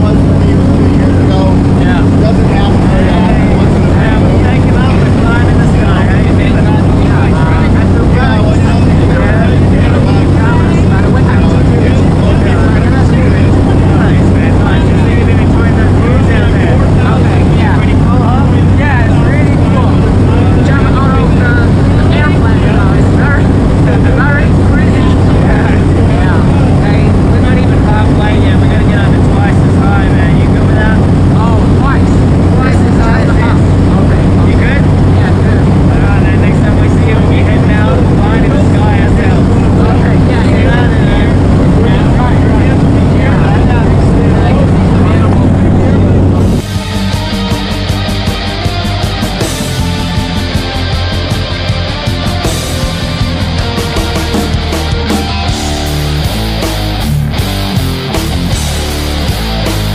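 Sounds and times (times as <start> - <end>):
propeller plane engine droning: 0.0 - 59.9
voices: 0.0 - 59.9.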